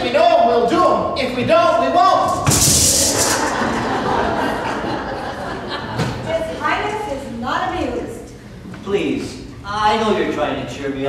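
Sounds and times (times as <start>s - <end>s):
drum thump: 2.3s - 3.5s
hand percussion rattle: 2.4s - 3.6s.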